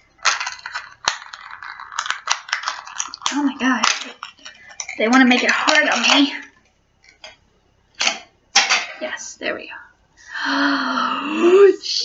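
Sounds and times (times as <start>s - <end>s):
plastic package crinkling: 0.0s - 7.4s.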